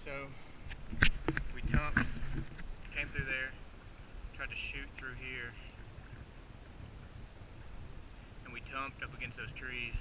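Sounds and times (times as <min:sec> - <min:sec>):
man speaking: 0:00.0 - 0:00.4, 0:02.9 - 0:03.6, 0:04.4 - 0:05.7, 0:08.5 - 0:10.0
wind rumble on microphone: 0:00.6 - 0:10.0.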